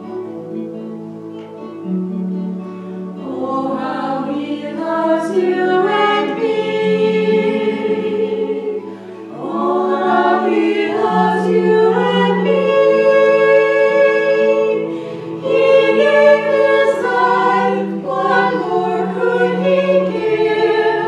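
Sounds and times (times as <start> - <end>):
women singing a hymn: 3.2 - 21.0.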